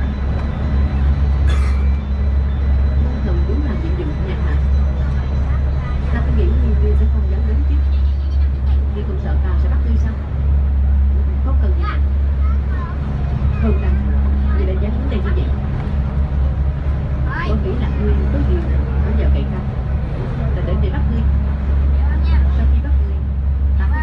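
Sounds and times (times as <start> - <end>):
ferry engines droning: 0.0 - 24.0
people talking: 3.0 - 10.3, 11.4 - 15.9, 17.3 - 24.0.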